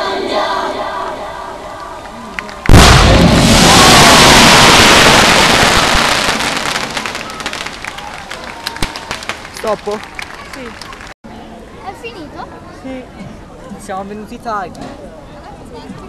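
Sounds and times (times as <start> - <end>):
pyrotechnics burst: 2.7 - 7.8.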